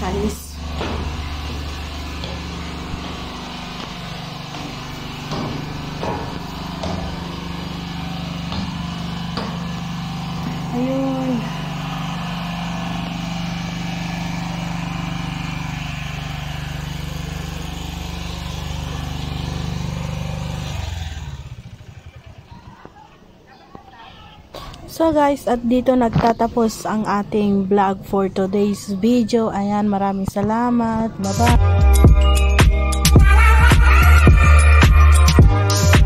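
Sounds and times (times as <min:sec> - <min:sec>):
low mechanical hum: 0:00.0 - 0:36.0
faint voices: 0:22.0 - 0:31.4.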